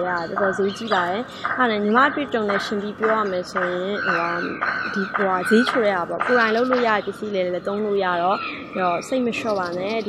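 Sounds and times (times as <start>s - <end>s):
young woman talking: 0.0s - 10.0s.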